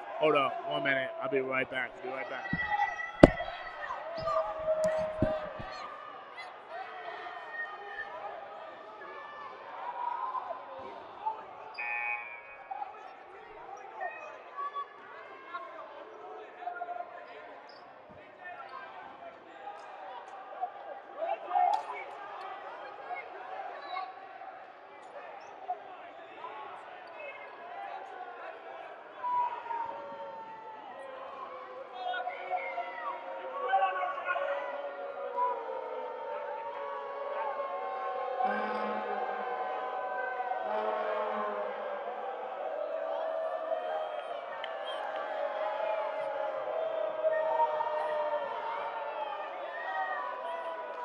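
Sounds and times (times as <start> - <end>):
many voices chatting: 0.0 - 51.0
balls bouncing on hardwood floor: 2.4 - 3.6, 4.2 - 5.8.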